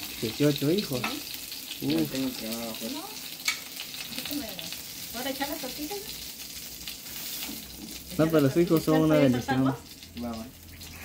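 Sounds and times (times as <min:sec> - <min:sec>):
chicken sizzling in oil: 0:00.0 - 0:11.0.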